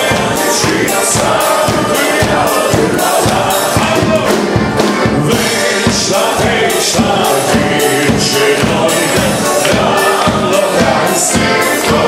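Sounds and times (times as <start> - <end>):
guests clapping along: 0.0 - 5.0, 6.4 - 12.0
band playing folk song: 0.0 - 12.0
group singing: 0.0 - 12.0.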